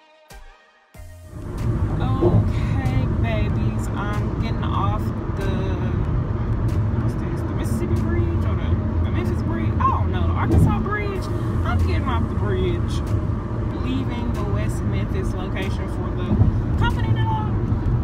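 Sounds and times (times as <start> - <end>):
road and engine rumble: 1.2 - 18.0
woman talking: 1.9 - 6.1, 6.9 - 13.1, 13.7 - 17.6.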